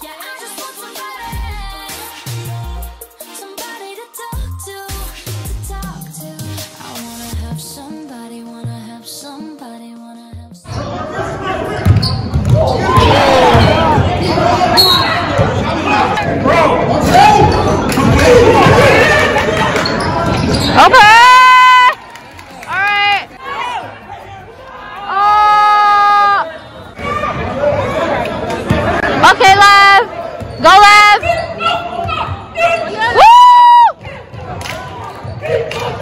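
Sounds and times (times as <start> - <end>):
voices echoing in gym: 10.6 - 33.2, 33.9 - 36.0
spectators chattering and calling out: 10.6 - 36.0
basketball bouncing on hardwood floor: 11.8 - 14.1.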